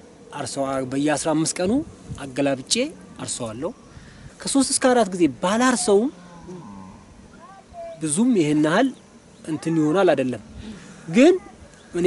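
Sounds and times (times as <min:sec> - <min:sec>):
ox lowing: 0:05.6 - 0:08.0.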